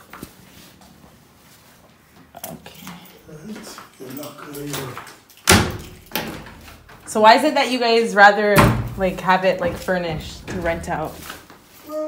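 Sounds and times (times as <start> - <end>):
wooden wardrobe door knocks: 8.6 - 9.0.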